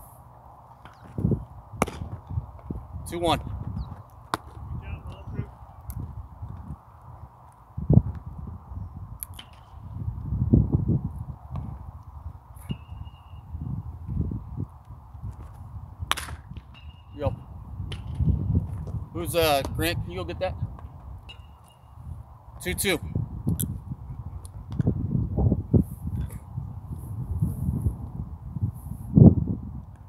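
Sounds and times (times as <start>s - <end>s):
wind rumbling on microphone: 0.0s - 30.0s
baseball hitting catcher's mitt crack: 0.8s - 2.2s, 4.2s - 5.2s, 16.1s - 16.8s.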